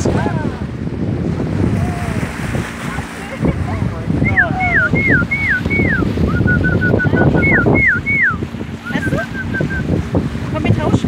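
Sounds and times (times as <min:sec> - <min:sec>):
wind and water rushing: 0:00.0 - 0:11.0
person whistling: 0:04.2 - 0:09.9.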